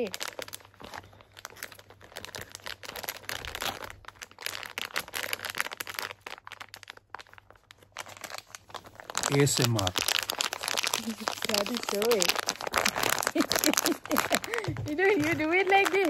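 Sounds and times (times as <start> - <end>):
plastic snack pouch crinkling: 0.0 - 16.0.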